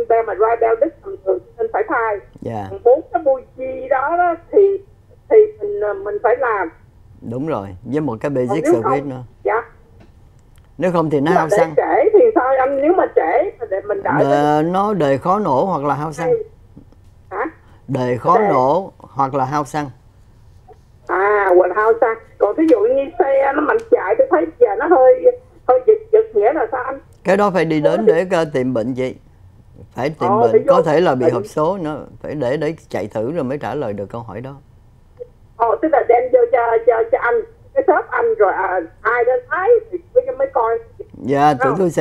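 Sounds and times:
person talking over phone: 0.0 - 9.7, 10.8 - 16.5, 17.3 - 19.8, 21.1 - 28.9, 29.8 - 32.2, 35.6 - 42.0
faint low hum: 0.0 - 42.0.

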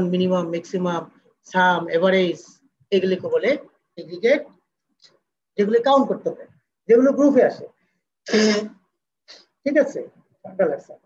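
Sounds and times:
person speaking: 0.0 - 11.0
person clearing throat: 8.3 - 8.8.

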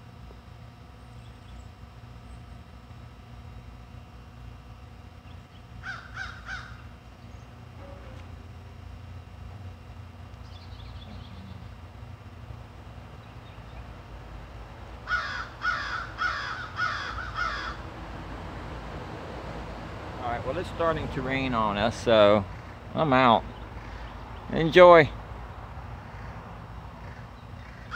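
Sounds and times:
bird calling: 5.2 - 8.3, 10.4 - 11.8, 15.1 - 17.9, 22.4 - 24.8, 26.0 - 27.9.

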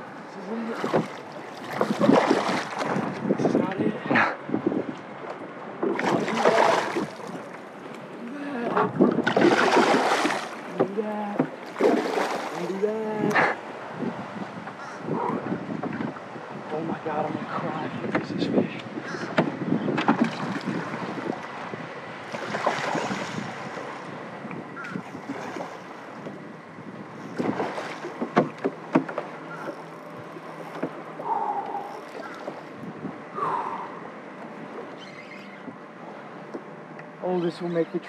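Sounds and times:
water moving around boat: 0.0 - 38.0
wind buffeting microphone: 0.7 - 5.2, 5.8 - 7.6, 8.6 - 28.7, 30.1 - 33.9.

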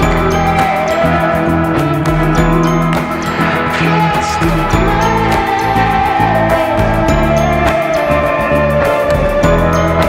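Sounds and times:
instrumental pop-rock music: 0.0 - 10.0.

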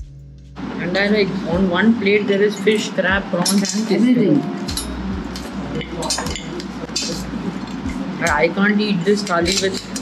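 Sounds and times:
metal spoons clinking on steel plates: 2.3 - 10.0.

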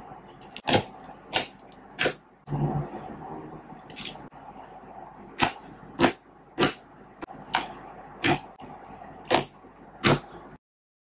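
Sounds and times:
slime squishing: 0.4 - 2.2, 3.8 - 4.3, 5.4 - 6.8, 7.5 - 8.6.

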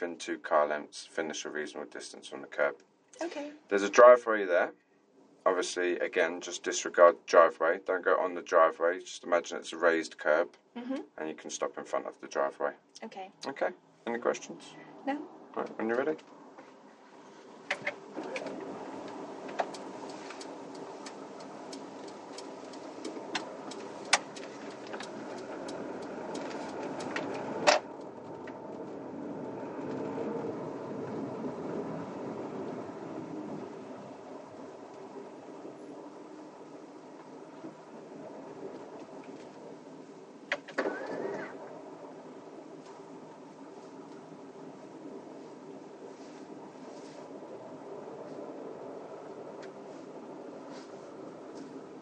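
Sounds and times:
car engine and tyre noise: 15.6 - 52.0.

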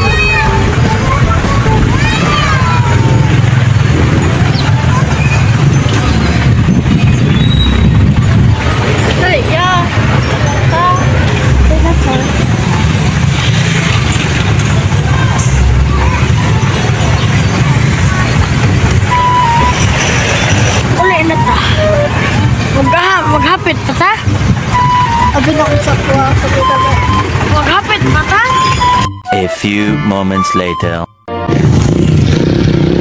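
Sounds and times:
people talking outdoors: 0.0 - 31.2
wind rumbling on microphone: 2.8 - 10.4, 17.0 - 22.8, 31.5 - 33.0.

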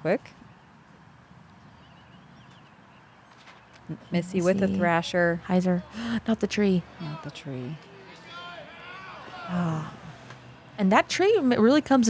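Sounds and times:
soft high bird chirps: 0.3 - 4.4.

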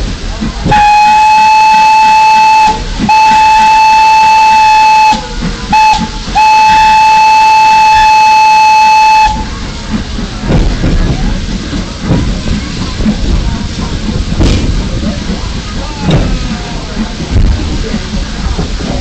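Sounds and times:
steam locomotive whistle: 0.6 - 9.5.

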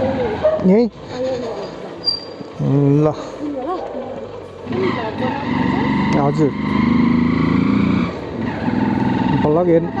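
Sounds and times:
motorcycle engine running: 2.6 - 10.0.

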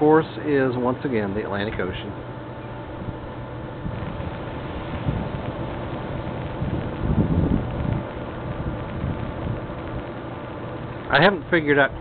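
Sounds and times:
wind buffeting microphone: 1.7 - 12.0.

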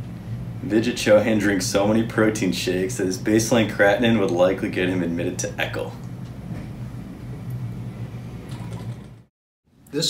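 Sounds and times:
low hum of room noise: 0.0 - 10.0.

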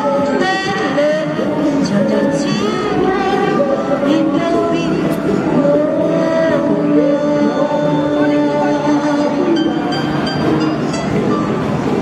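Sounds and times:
amplified singing over backing track: 0.0 - 10.2
steady noisy din: 0.0 - 12.0.

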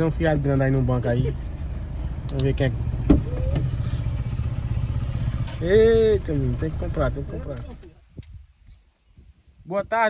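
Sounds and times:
car rumbling over rough road: 0.0 - 7.9.

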